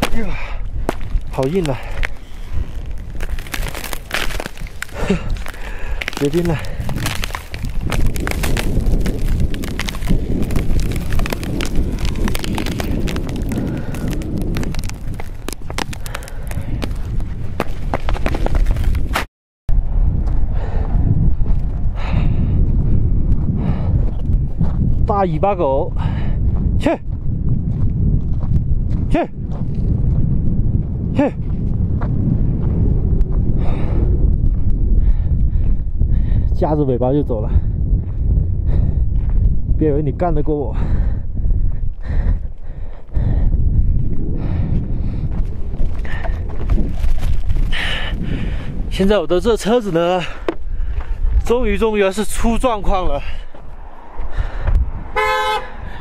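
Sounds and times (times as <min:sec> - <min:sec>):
steady low rumble: 0:00.0 - 0:19.0, 0:19.7 - 0:56.0
boots crunching on frozen gravel: 0:00.0 - 0:19.1.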